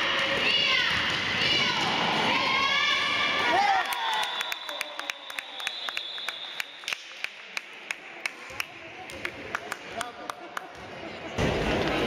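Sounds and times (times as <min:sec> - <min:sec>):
spectators clapping: 0:03.6 - 0:10.8.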